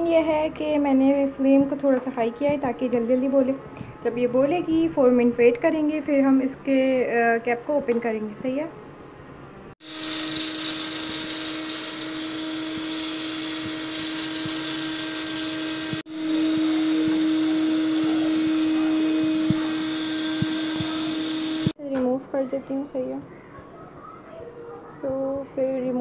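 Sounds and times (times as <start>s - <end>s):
pressure cooker whistling: 9.8s - 21.8s.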